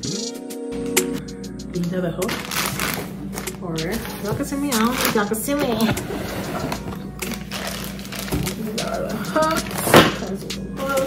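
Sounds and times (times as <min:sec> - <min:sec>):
plastic packaging crinkling: 0:02.3 - 0:05.9, 0:06.7 - 0:09.0.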